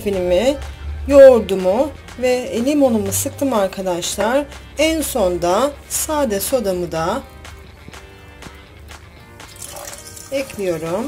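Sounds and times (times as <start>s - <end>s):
background music: 0.0s - 11.0s
water pouring and splashing: 9.4s - 11.0s.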